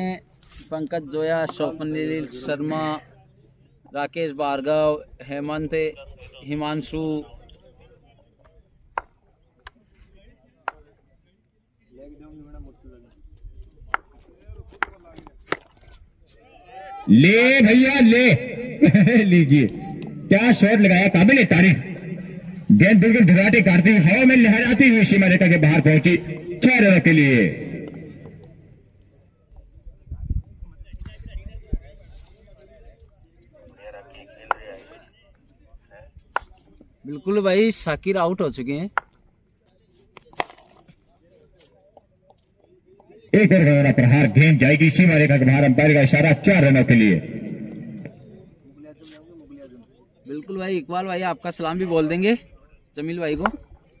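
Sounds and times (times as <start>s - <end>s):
distant crowd voices: 7.1s - 37.3s, 39.2s - 54.0s
cricket bat striking ball: 53.4s - 53.6s.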